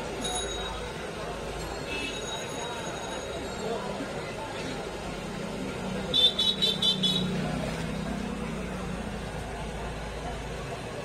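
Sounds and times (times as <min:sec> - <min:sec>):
street traffic hum: 0:00.0 - 0:11.0.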